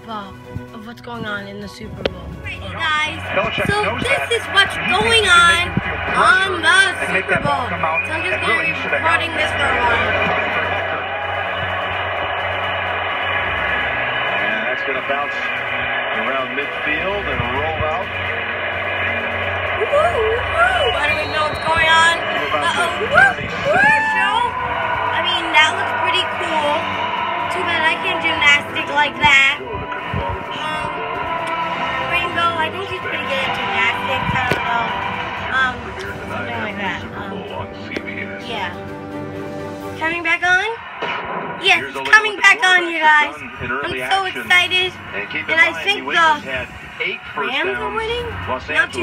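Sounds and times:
muffled music from tv speaker: 0.0s - 49.0s.

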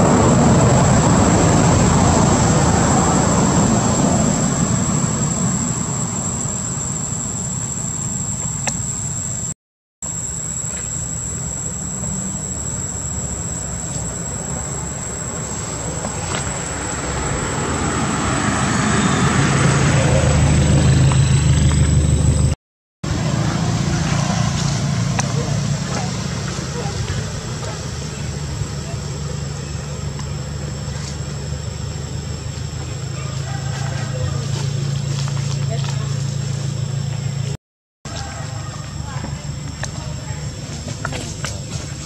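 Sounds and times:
outdoor background noise: 0.0s - 42.0s
vehicle engine running: 0.0s - 42.0s.

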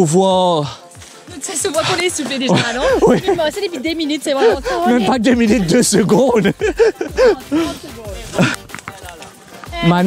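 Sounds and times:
person speaking: 1.4s - 10.0s.

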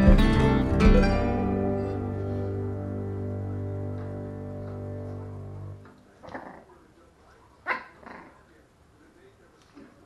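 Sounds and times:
puppy barking: 7.7s - 8.3s.

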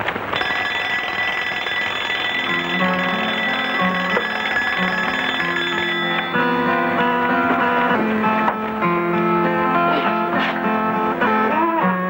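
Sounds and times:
alarm clock ringing: 0.4s - 8.0s.

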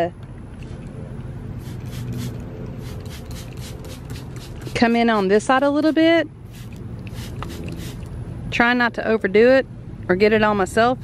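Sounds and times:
spray bottle squirting: 1.6s - 8.1s.

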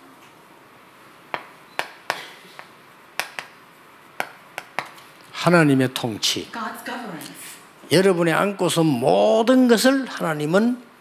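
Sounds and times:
chalk tapping on chalkboard: 1.3s - 3.6s, 4.2s - 5.0s.

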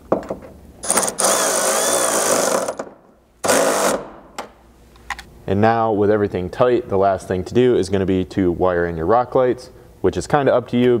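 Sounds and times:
electric ratchet motor whining: 0.8s - 2.8s.

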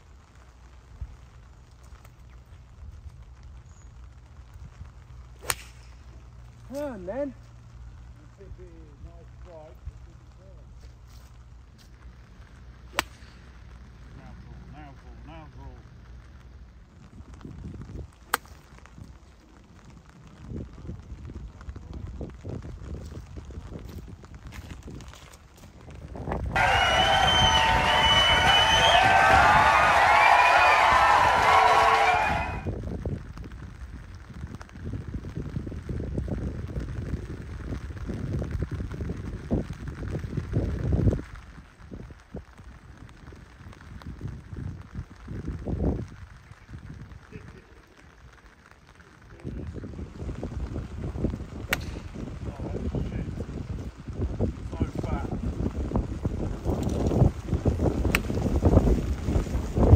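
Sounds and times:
wind buffeting microphone: 16.0s - 59.9s.

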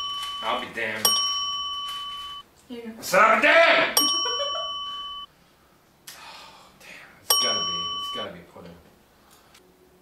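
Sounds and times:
bell chime dings: 0.0s - 2.4s, 4.0s - 5.3s, 7.3s - 8.4s.

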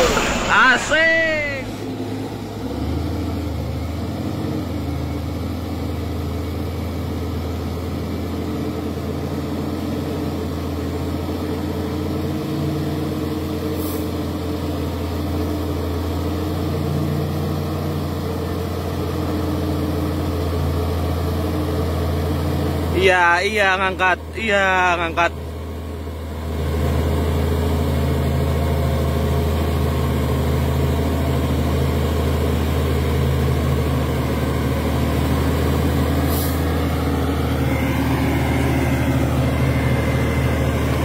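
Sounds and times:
brief high hiss: 0.0s - 2.0s
truck diesel engine under load: 1.6s - 41.0s.

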